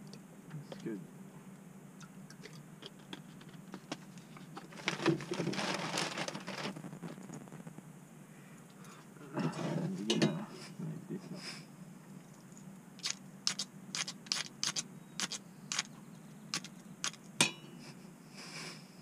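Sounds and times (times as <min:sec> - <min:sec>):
rustling: 0:03.0 - 0:07.9.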